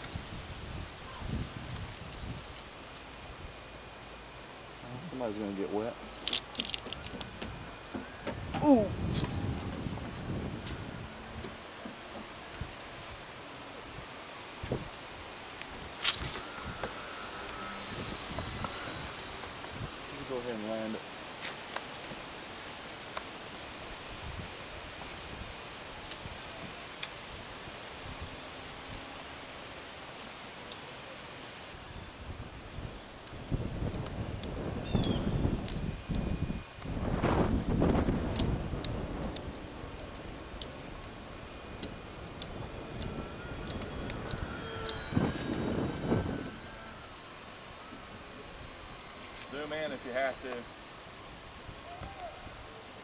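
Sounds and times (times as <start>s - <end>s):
wind buffeting microphone: 0.0s - 3.6s, 6.7s - 13.2s, 31.9s - 48.8s
model plane motor whine: 0.0s - 53.0s.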